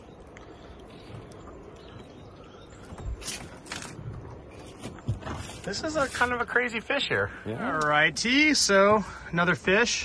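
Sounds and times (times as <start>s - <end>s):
low wind: 0.0s - 10.0s
river water: 0.0s - 10.0s.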